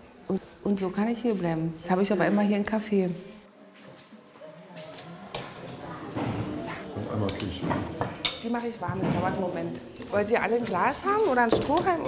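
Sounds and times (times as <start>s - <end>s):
low indistinct voices: 3.5s - 12.0s.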